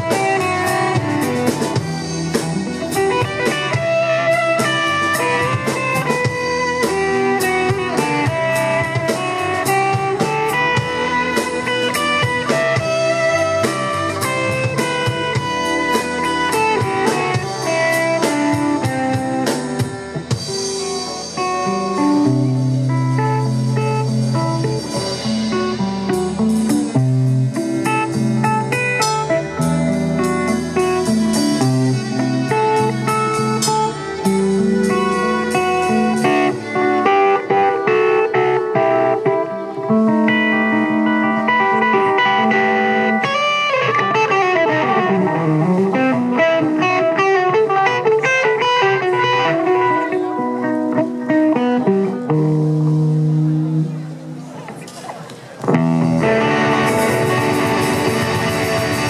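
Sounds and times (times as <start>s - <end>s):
electric bass: 0.0s - 54.9s, 55.6s - 59.0s
drums: 0.0s - 59.0s
electric guitar: 0.0s - 59.0s
violin: 29.4s - 52.2s.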